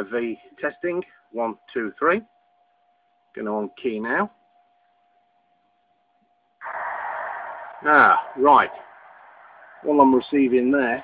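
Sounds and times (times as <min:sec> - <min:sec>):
faint steady tone: 0:00.0 - 0:11.0
harsh digital data hiss: 0:06.6 - 0:11.0.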